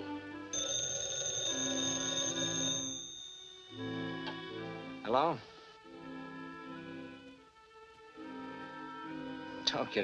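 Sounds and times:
telephone bell ringing: 0.6 - 4.2
orchestral film music: 3.6 - 10.0.

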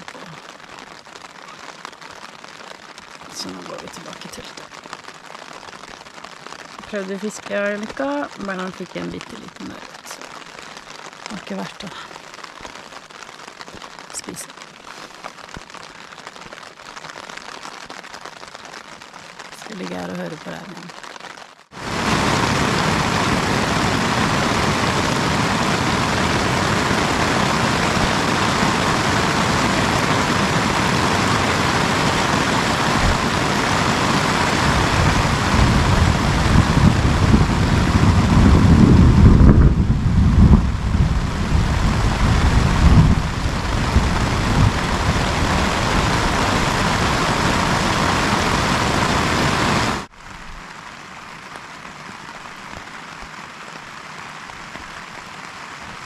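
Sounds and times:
heavy rain on a tent: 0.0 - 56.0
wind: 0.0 - 56.0
deep rumbling: 22.2 - 49.0.

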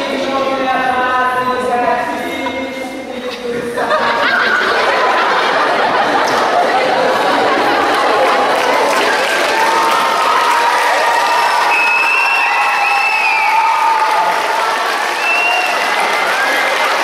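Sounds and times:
audience applause: 4.4 - 17.0.

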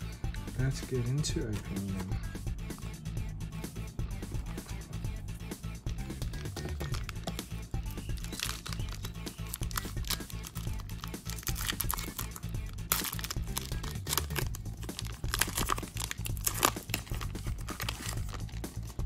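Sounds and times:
background music: 0.0 - 19.0
foil wrapper crinkling and tearing: 6.8 - 7.4, 8.1 - 19.0.

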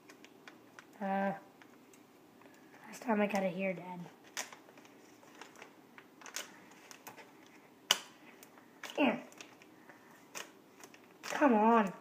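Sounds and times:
scissors snipping foil packet: 4.3 - 7.2, 10.3 - 12.0.

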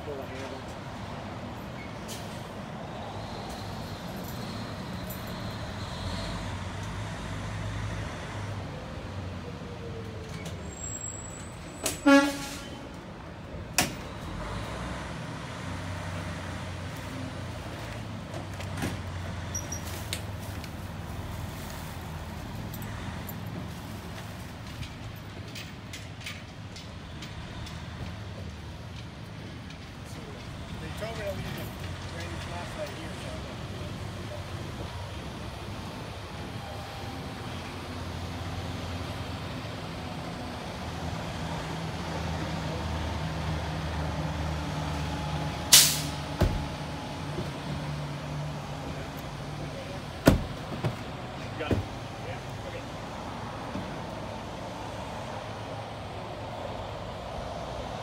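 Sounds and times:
short horn toot: 11.8 - 12.9.

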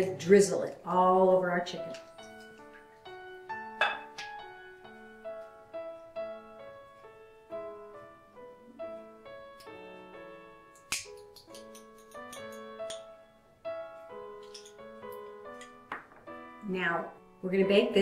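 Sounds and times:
gentle piano melody: 0.0 - 18.0.

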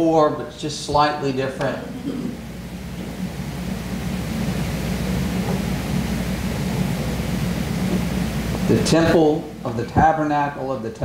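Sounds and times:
low hum and rumble: 0.0 - 11.0.

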